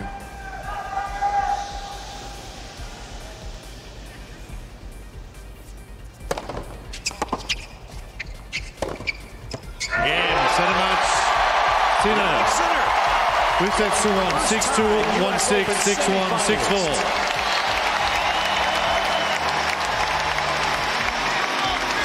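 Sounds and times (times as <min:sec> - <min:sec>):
tennis ball struck with rackets: 0:06.2 - 0:07.6, 0:08.6 - 0:09.7
crowd cheering loudly: 0:09.9 - 0:22.0
hushed stadium crowd: 0:10.3 - 0:22.0.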